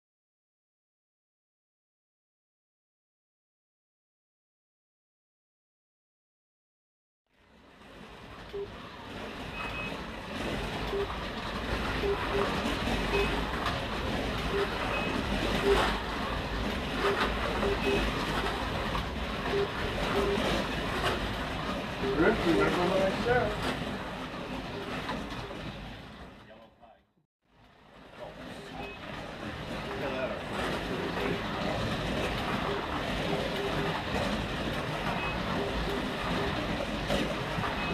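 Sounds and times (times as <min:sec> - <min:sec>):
slot cars rattling in track: 0:07.6 - 0:26.8, 0:27.7 - 0:37.9
slot car motors whirring: 0:07.9 - 0:26.3
short electronic beeps: 0:09.5 - 0:10.0, 0:10.9 - 0:11.1, 0:12.0 - 0:13.4, 0:14.5 - 0:15.9, 0:17.0 - 0:18.1, 0:19.5 - 0:20.5, 0:28.7 - 0:29.0.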